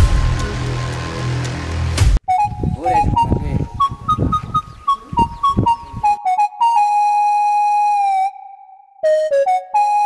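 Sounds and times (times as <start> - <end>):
flute melody: 2.2 - 10.0.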